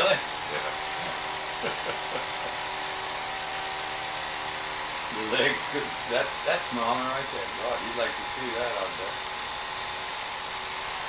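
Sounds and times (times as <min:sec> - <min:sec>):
film projector whirring: 0:00.0 - 0:11.0.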